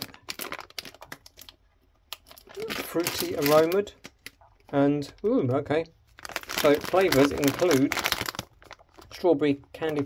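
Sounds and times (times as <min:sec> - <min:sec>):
plastic bag crinkling: 0:00.0 - 0:05.3, 0:06.1 - 0:10.0.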